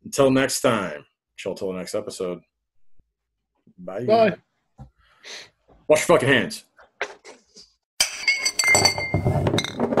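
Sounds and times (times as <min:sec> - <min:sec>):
glasses clinking: 0:08.0 - 0:10.0.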